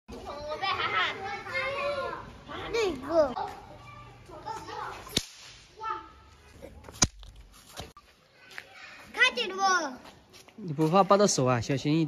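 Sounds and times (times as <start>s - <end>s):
young children's high voices: 0.2s - 6.3s, 8.2s - 10.1s.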